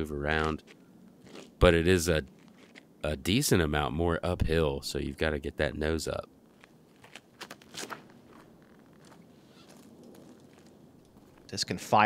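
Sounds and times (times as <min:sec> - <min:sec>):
quiet woodland background: 0:00.0 - 0:12.0
faint footsteps and scuffs: 0:06.5 - 0:11.5.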